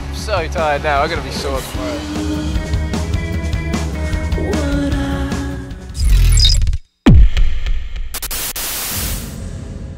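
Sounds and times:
bright hiss burst: 8.2s - 9.4s.

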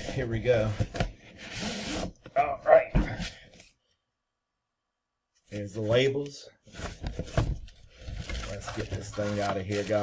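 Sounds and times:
wrapping ripping: 8.0s - 10.0s.

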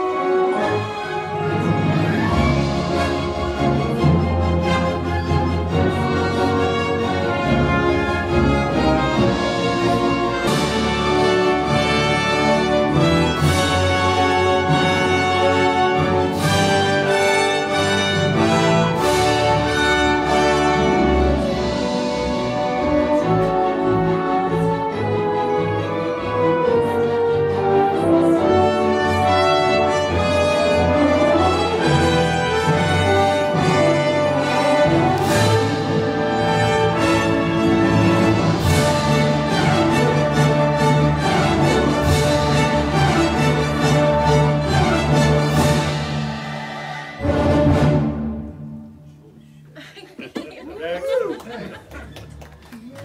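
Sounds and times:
orchestra playing film music: 0.0s - 49.5s.

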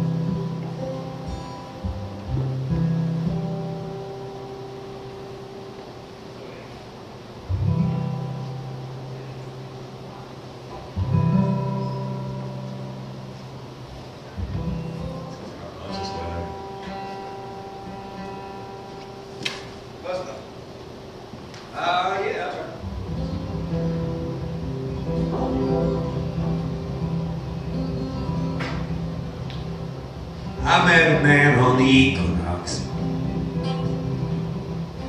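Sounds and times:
acoustic guitar chords: 0.0s - 21.9s, 22.7s - 35.0s.

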